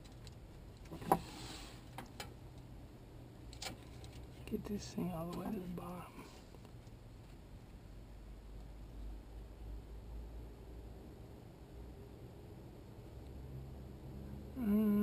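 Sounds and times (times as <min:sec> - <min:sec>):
faint scattered noise: 0:00.0 - 0:14.4
quiet low rumble: 0:00.0 - 0:15.0.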